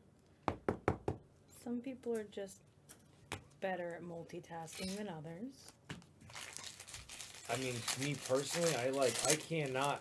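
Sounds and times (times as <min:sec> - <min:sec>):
sharp knocks on hard surface: 0:00.5 - 0:01.2
person speaking: 0:07.5 - 0:10.0.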